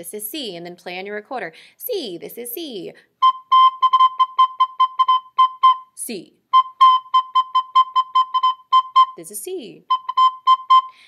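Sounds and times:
recorder short tongued notes: 0:03.2 - 0:11.0.

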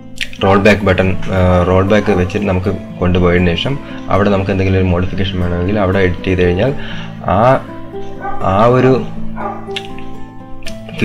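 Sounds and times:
held instrumental notes: 0:00.0 - 0:11.0.

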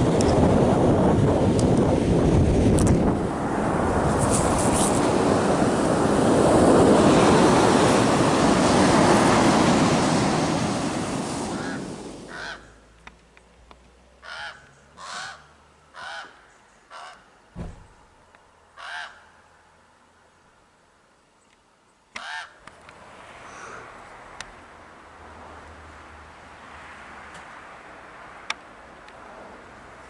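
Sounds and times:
surf: 0:00.0 - 0:12.4
wind on microphone: 0:00.0 - 0:12.4
crow cawing harshly: 0:11.5 - 0:12.8, 0:14.2 - 0:17.3, 0:18.8 - 0:19.4, 0:22.2 - 0:22.6
low thump: 0:17.6 - 0:18.0.

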